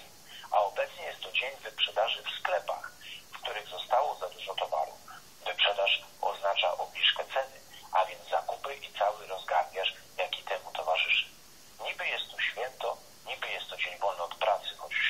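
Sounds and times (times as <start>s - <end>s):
person talking over telephone: 0.0s - 15.0s.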